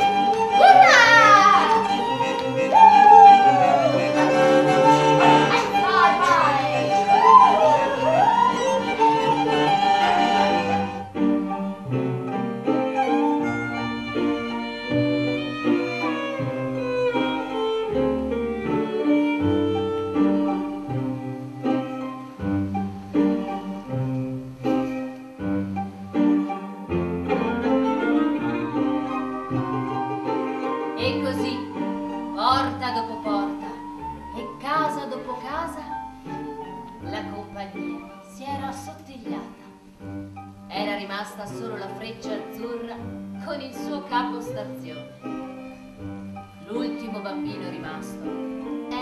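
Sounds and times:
violin and cello music: 0.0 - 49.0.

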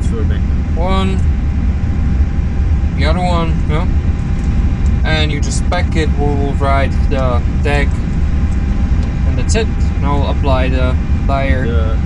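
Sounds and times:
low machinery rumble: 0.0 - 12.0.

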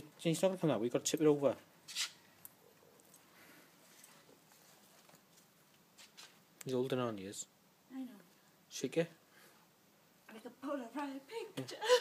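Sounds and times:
faint background hiss: 0.0 - 12.0.

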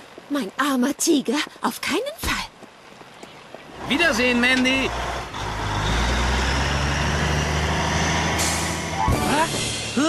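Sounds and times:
fire engine rumbling: 3.8 - 10.0.

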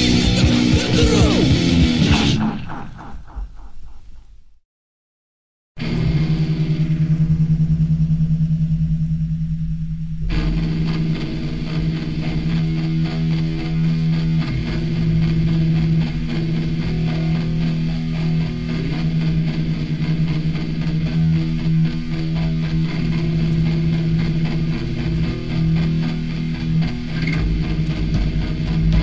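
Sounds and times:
punk rock band playing: 0.0 - 3.7, 10.3 - 29.0
low rapidly pulsing note: 0.0 - 4.5.

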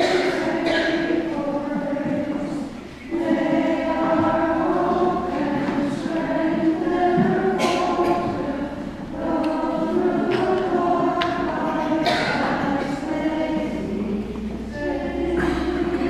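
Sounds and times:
choir singing a hymn: 0.0 - 16.0.

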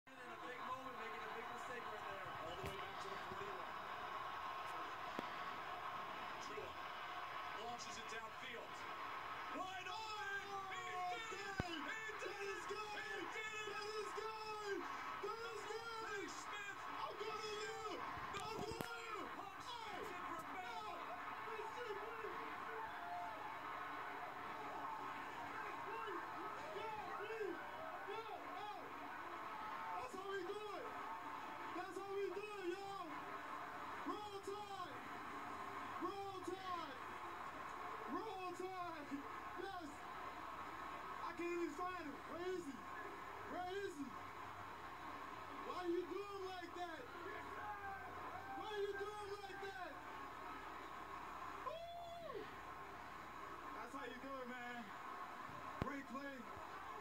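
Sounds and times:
faint television voices: 0.1 - 57.0
stadium crowd noise: 0.1 - 57.0.

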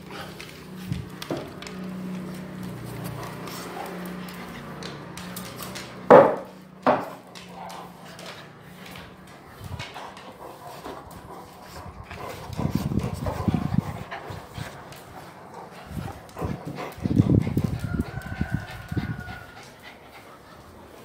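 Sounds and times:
dogs vocalizing: 6.6 - 21.0.

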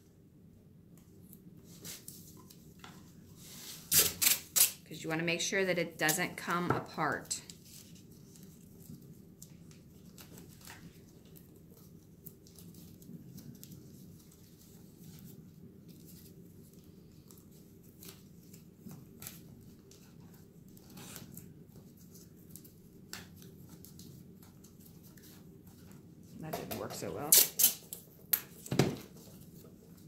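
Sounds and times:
tape tearing and sticking: 3.9 - 4.8, 27.2 - 28.6.

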